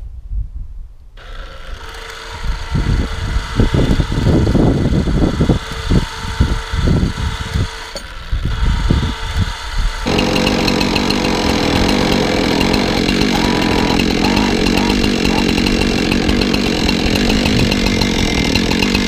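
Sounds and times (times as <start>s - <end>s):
chainsaw running at high speed: 1.2s - 19.0s
engine running: 9.4s - 19.0s
heavy low thumps: 10.1s - 19.0s.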